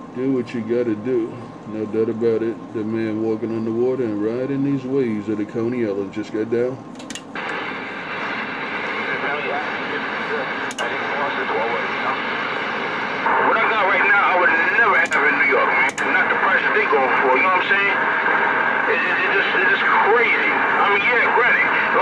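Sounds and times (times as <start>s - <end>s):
radio static hiss: 0.0s - 22.0s
radio channel click: 6.9s - 12.5s, 13.2s - 20.4s
sharp static pops: 7.0s - 22.0s
garbled radio voice: 8.9s - 12.6s, 13.2s - 22.0s.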